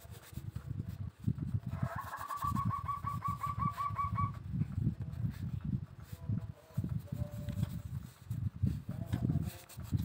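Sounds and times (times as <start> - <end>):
bamboo strips knocking and rubbing: 0.0 - 10.0
bird calling rapid notes: 1.9 - 4.4.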